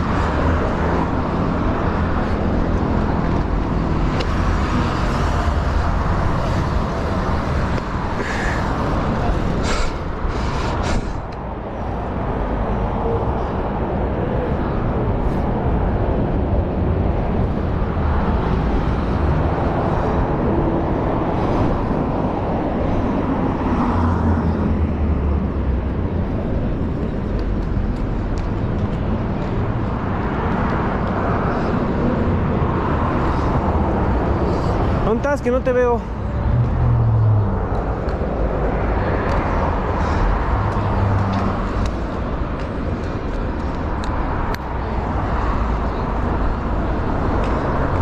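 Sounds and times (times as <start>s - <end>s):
highway traffic rumble: 0.0s - 48.0s.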